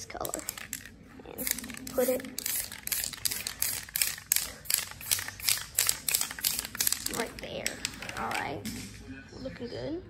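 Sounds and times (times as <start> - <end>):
spray can hissing bursts: 1.4 - 7.2.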